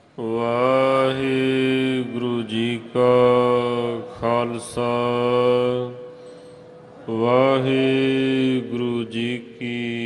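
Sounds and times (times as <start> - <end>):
man chanting scripture: 0.2 - 10.0.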